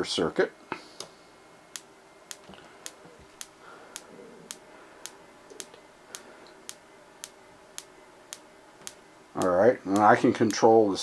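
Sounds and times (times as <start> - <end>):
flash tube firing with clicks: 1.7 - 10.7.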